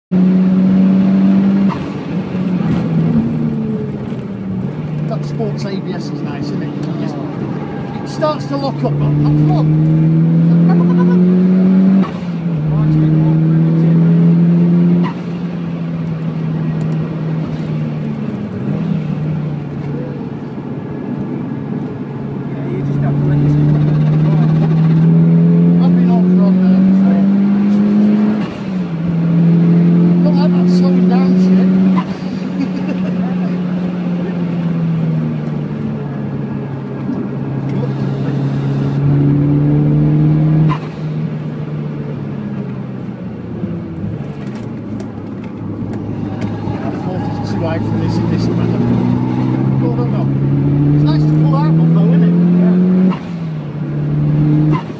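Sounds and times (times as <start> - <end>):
car engine under hard throttle: 0.1 - 54.9.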